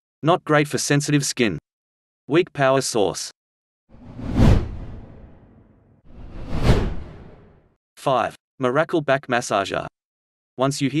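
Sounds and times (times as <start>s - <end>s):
whoosh transition effect: 4.0s - 7.6s.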